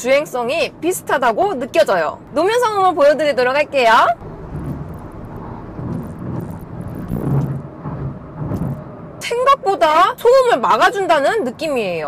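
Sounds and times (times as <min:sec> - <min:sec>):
road and tyre noise in car: 0:00.0 - 0:12.0.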